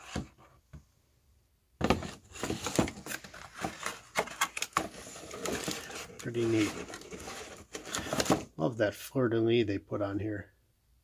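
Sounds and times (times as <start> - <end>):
packaging rustling: 1.9 - 8.5.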